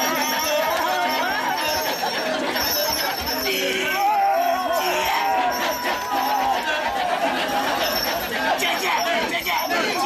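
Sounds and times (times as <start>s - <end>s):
male chorus chanting: 2.4s - 10.0s.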